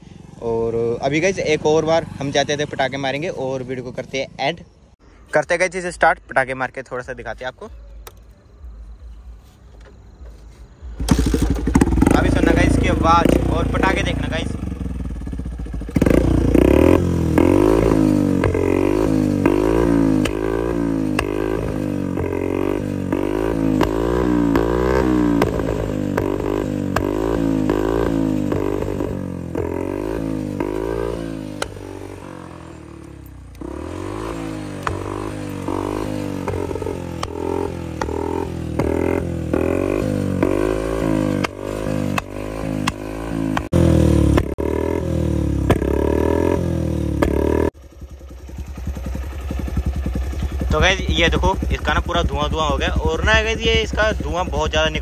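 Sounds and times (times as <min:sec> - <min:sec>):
motorcycle engine revving: 0:00.0 - 0:04.9, 0:10.8 - 0:55.0
exhaust popping and crackling: 0:10.9 - 0:46.0, 0:47.1 - 0:55.0.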